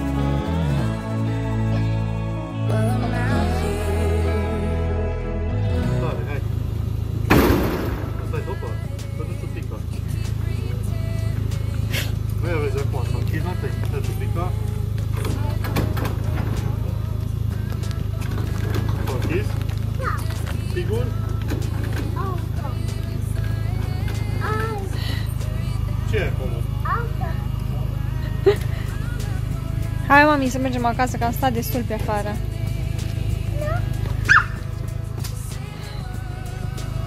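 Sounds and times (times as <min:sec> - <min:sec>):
car engine idling: 0:00.0 - 0:37.0
small child's vocal sounds: 0:20.0 - 0:20.4.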